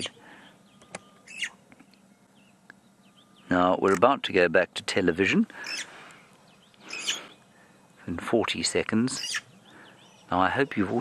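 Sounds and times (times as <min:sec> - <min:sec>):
starling call: 0:01.2 - 0:01.6, 0:05.6 - 0:06.2, 0:06.8 - 0:07.5, 0:09.1 - 0:10.3.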